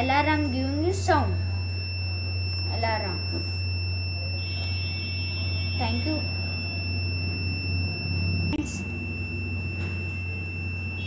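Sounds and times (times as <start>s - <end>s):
high-pitched electronic buzzer: 0.0s - 11.0s
low hum: 0.0s - 11.0s.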